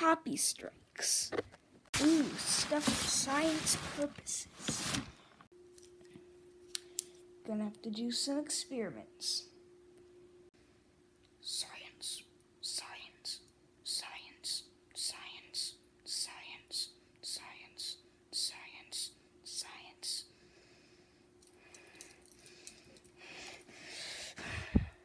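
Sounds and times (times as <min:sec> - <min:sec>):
faint steady hum: 0:00.0 - 0:25.0
person whispering: 0:11.4 - 0:20.3.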